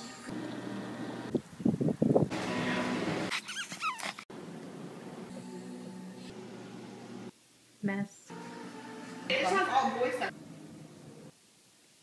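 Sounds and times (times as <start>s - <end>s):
noise: 0.4s - 12.0s.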